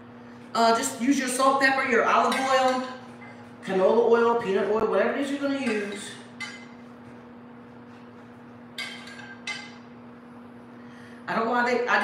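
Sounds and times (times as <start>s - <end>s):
steady low hum: 0.0s - 12.0s
cookware clinking: 2.2s - 3.4s, 5.6s - 6.8s, 8.8s - 9.9s.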